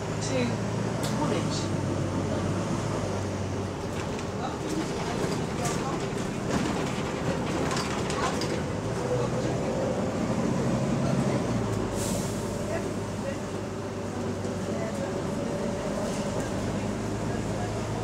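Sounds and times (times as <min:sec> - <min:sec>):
bus diesel engine droning: 0:00.0 - 0:18.0
road noise: 0:00.0 - 0:18.0
bodywork rattles and knocks: 0:03.9 - 0:08.7.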